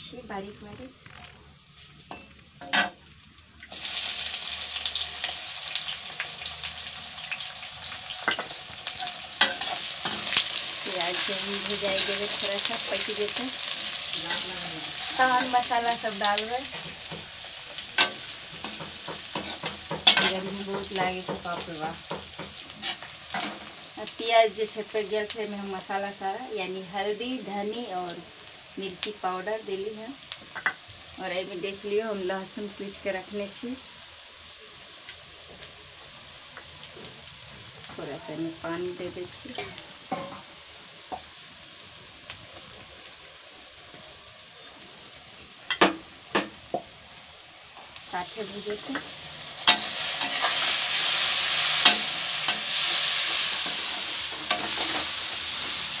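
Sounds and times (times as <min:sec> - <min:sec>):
onion sizzling in oil: 0:00.0 - 0:56.0
metal spatula scraping pan: 0:22.8 - 0:23.6, 0:49.6 - 0:55.2.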